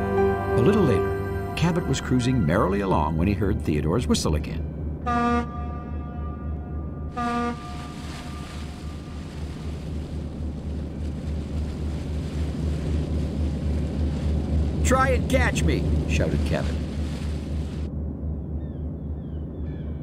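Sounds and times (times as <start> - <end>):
low rumble: 0.0 - 20.0
tugboat whistle toots: 5.0 - 9.1.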